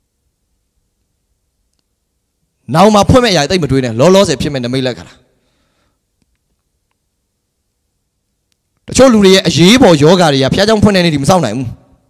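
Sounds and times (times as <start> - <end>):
man speaking into a microphone: 2.6 - 5.3, 8.8 - 12.0.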